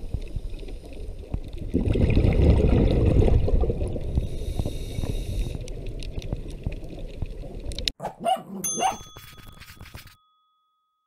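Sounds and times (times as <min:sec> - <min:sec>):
bubbling: 0:00.9 - 0:07.9
ringing chime-like tone: 0:08.6 - 0:11.0.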